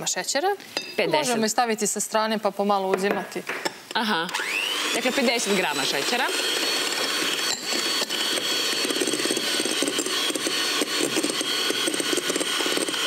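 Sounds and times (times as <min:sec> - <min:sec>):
electric hand mixer whine: 0:04.3 - 0:13.0.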